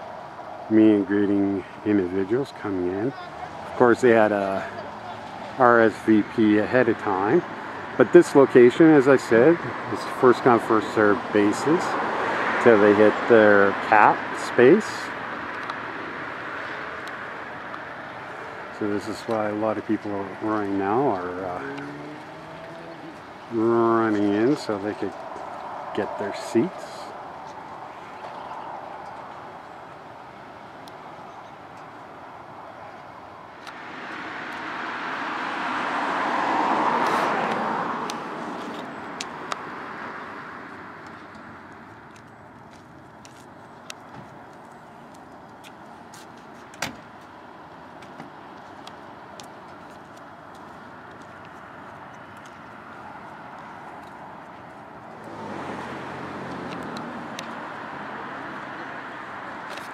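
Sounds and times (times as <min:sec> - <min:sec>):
car engine approaching: 0:00.0 - 0:59.9
car driving past: 0:06.7 - 0:30.2, 0:33.4 - 0:42.2, 0:55.0 - 0:59.9.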